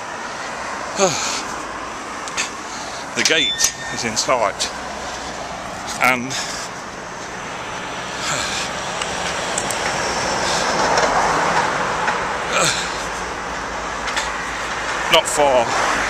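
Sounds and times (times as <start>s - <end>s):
vehicle passing: 0.0s - 16.0s.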